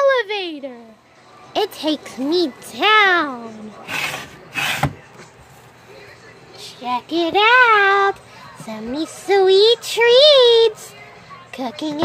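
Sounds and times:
wooden scrape: 3.8s - 5.0s
rubbing and handling noise: 3.8s - 5.8s.

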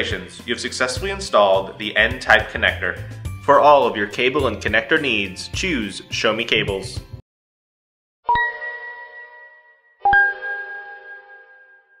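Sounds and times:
bell-like chime strikes: 8.3s - 12.0s.

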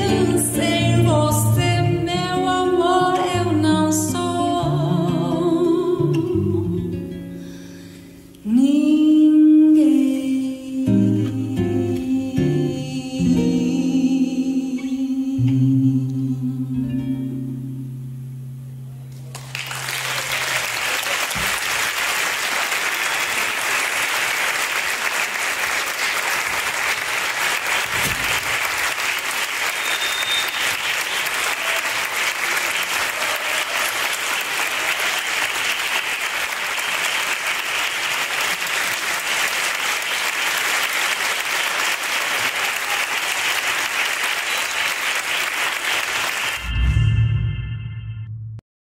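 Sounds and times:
acoustic guitar and voice: 0.0s - 19.1s
audience applauding: 19.2s - 46.7s.

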